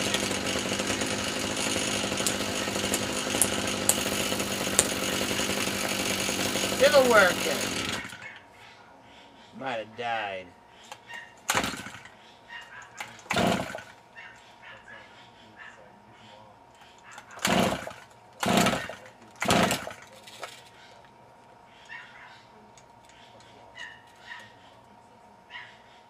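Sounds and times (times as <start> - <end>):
recoil starter pulls whirring: 0.0 - 8.4, 11.4 - 12.1, 12.9 - 14.0, 17.0 - 20.8.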